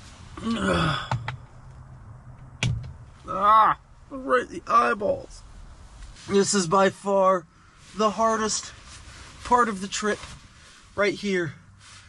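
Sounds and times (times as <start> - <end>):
man groaning: 0.4 - 1.1, 3.2 - 3.8.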